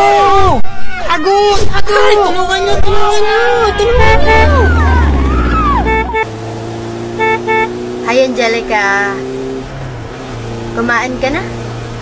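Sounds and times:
wailing gliding voices: 2.7 - 6.2
deep rumble: 3.5 - 6.2
steady engine-like drone: 3.8 - 6.3.

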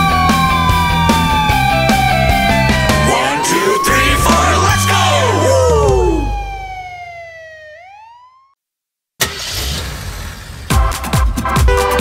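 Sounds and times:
backing music: 0.0 - 7.1
siren wail falling in pitch: 0.0 - 8.6.

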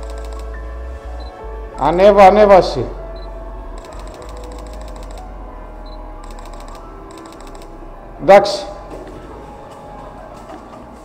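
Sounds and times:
camera shutter rapid clicks: 0.0 - 0.5, 6.3 - 7.7.

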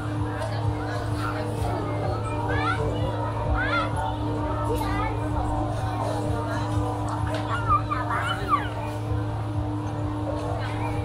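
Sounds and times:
steady low hum: 0.0 - 11.0
children shouting: 0.4 - 11.0.

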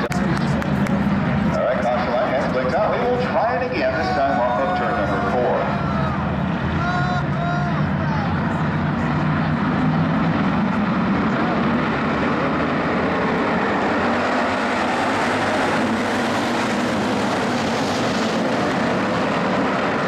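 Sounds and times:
race car engines roaring: 0.0 - 20.0.

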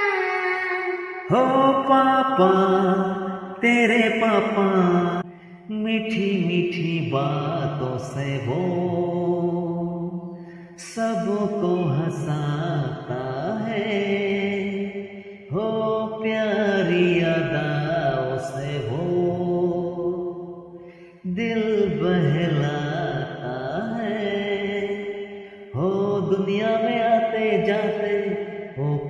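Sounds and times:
man and girl singing: 0.0 - 10.1, 10.8 - 14.9, 15.5 - 20.1, 21.2 - 25.0, 25.8 - 29.0
recorded backing track: 0.0 - 29.0.

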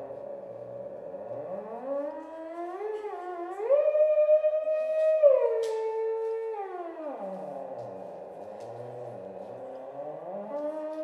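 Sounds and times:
theremin tone sliding in pitch: 0.0 - 11.0.

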